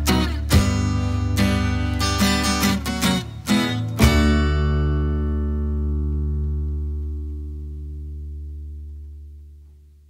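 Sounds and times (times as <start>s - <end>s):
acoustic guitar strummed chord: 0.0s - 8.4s.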